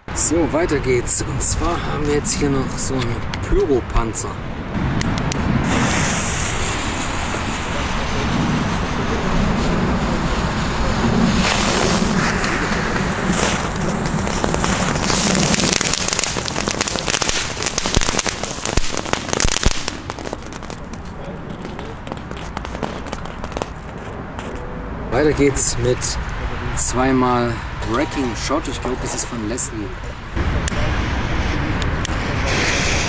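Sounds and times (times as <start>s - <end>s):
firework crackling pops: 5.0s - 24.7s
firework spark-spraying hiss: 5.4s - 24.6s, 31.4s - 33.0s.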